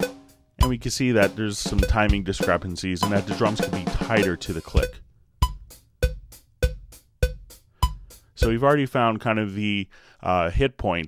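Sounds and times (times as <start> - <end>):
acoustic drums playing: 0.0 - 8.8
metronome click: 4.8 - 8.0.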